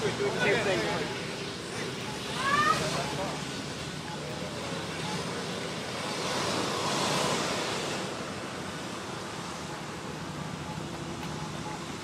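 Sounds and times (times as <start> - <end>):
vehicle passing: 0.0 - 11.8
road traffic hum: 0.0 - 12.0.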